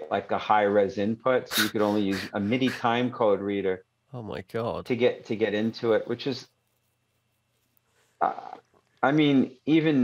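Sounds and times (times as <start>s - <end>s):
man saying uh: 1.5s - 3.0s, 4.2s - 5.2s.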